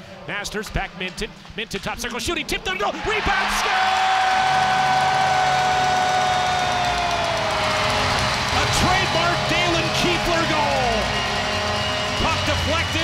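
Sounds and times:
crowd cheering: 2.7s - 13.0s.

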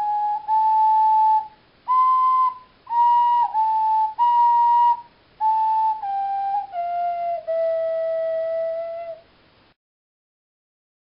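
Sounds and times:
ocarina long note: 0.0s - 9.2s.

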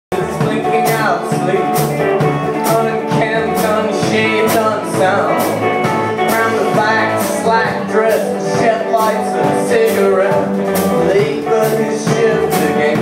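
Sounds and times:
bass guitar: 0.1s - 13.0s
drum kit with cymbal hits: 0.1s - 13.0s
electric guitar: 0.1s - 13.0s.

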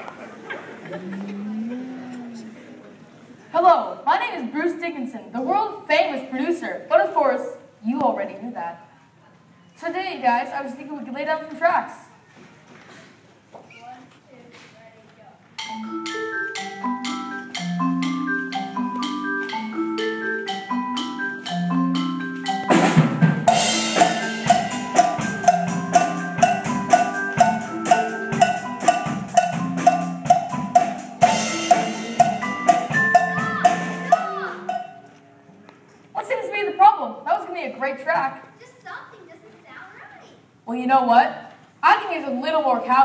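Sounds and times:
drum kit beat: 15.6s - 35.1s
marimbas playing a riff: 15.6s - 35.4s.

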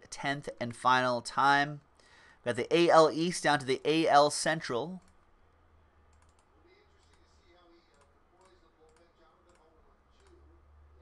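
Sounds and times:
computer mouse and keyboard clicks: 6.1s - 7.3s.

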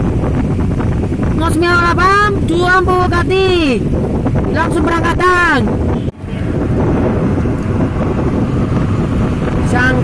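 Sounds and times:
road traffic rumble: 0.0s - 10.0s
wind buffeting microphone: 0.0s - 10.0s.

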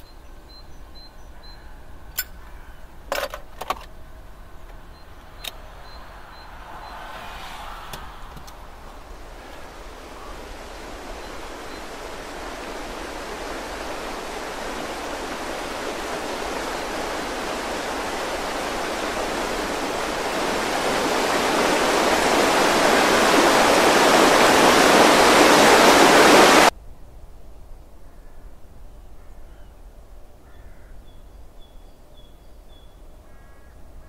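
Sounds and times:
rushing noise: 4.5s - 26.7s.

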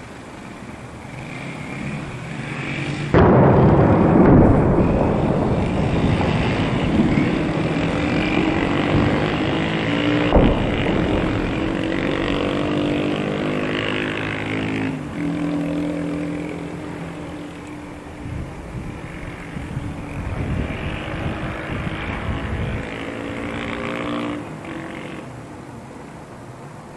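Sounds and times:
engine drone: 0.0s - 26.9s
low rumble of a blast: 3.1s - 14.9s
sharp crack: 3.1s - 16.9s.

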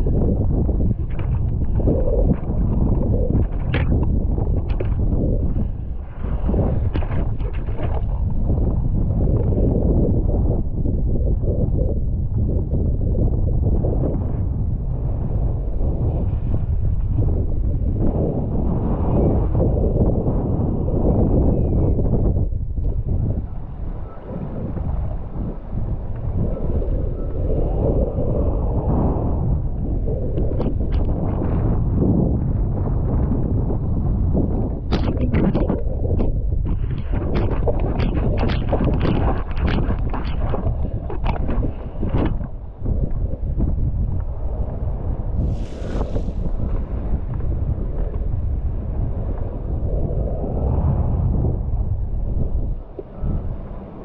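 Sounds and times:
choppy water splashing: 0.0s - 9.6s, 34.3s - 48.6s
wind buffeting microphone: 0.0s - 54.0s.

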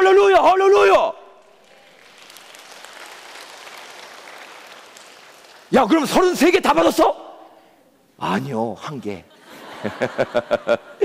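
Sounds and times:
congregation applauding: 1.4s - 6.0s.

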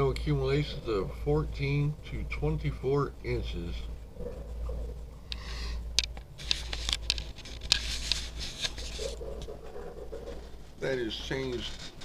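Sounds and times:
soft murmur: 0.0s - 12.0s
steady low hum: 0.0s - 12.0s
sharp clicks: 5.3s - 7.8s
paper rustling: 6.4s - 12.0s.

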